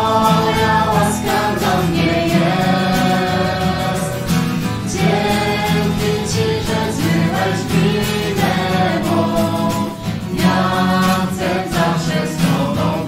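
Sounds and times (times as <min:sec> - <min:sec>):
group of voices singing: 0:00.0 - 0:13.0.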